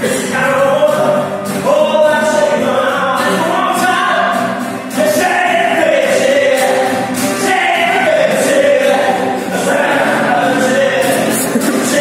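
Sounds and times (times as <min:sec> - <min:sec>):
acoustic guitars: 0:00.0 - 0:12.0
person singing: 0:00.0 - 0:12.0.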